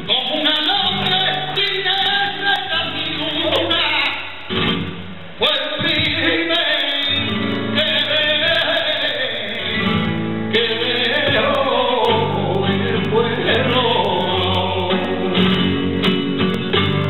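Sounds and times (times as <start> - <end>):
flamenco guitar: 0.0 - 17.0
man singing flamenco: 0.0 - 17.0.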